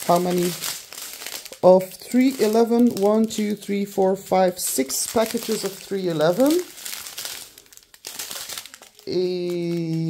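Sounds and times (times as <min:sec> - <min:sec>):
plastic bags crinkling: 0:00.0 - 0:10.0.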